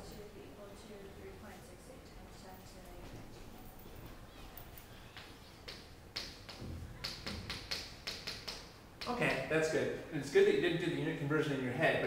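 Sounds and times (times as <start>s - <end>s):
chalk tapping and scraping on chalkboard: 5.1s - 9.2s.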